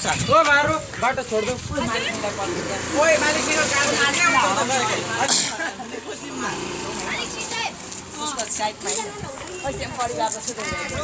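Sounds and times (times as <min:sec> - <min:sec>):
people talking on a street: 0:00.0 - 0:11.0.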